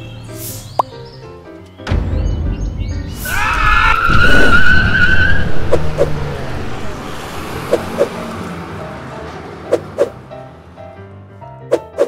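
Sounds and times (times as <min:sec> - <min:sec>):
tyre screech: 0:03.2 - 0:05.6.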